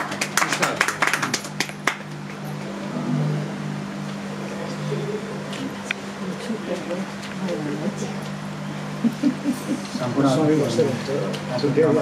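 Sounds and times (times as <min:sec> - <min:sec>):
hand claps: 0:00.0 - 0:02.8
steady low hum: 0:00.0 - 0:12.0.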